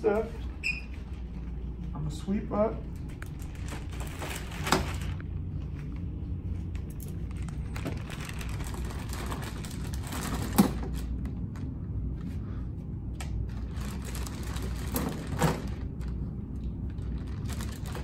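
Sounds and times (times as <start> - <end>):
steady low hum: 0.0 - 18.0
plastic bag rustling and crinkling: 3.0 - 5.4, 7.1 - 11.3, 13.5 - 18.0.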